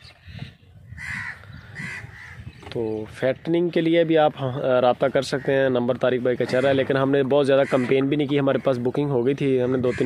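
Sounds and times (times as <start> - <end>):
harsh bird calls: 0.0 - 10.0.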